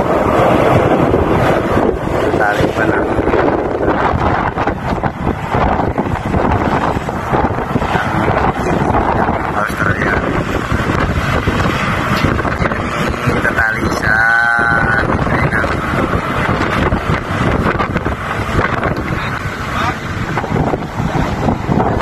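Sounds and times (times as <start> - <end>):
machinery rumble: 0.0 - 22.0
wind on microphone: 0.0 - 22.0.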